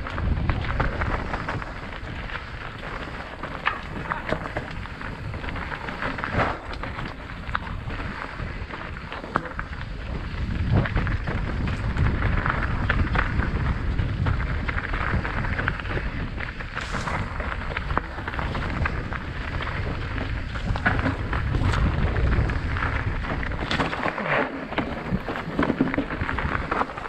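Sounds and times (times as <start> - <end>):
bike clicks and rattles: 0.0 - 27.0
tyres rolling over dirt: 0.0 - 27.0
wind buffeting microphone: 0.0 - 27.0.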